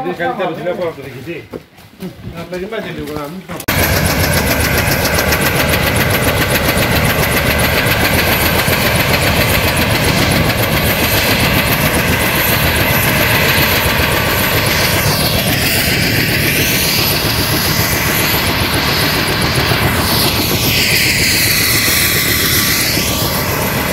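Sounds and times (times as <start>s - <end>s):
helicopter turbine and rotor: 3.7s - 23.9s.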